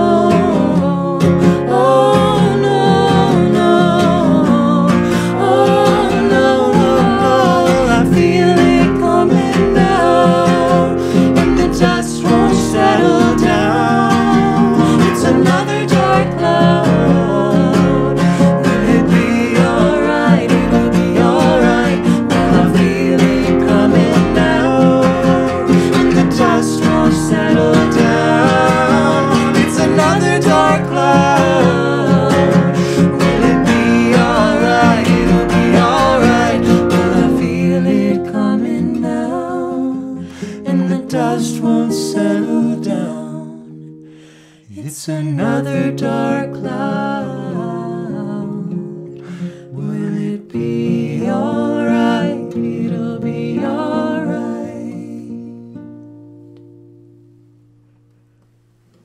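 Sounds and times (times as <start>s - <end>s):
acoustic guitar strummed: 0.0s - 44.6s, 45.4s - 59.0s
man and woman singing: 0.0s - 55.8s.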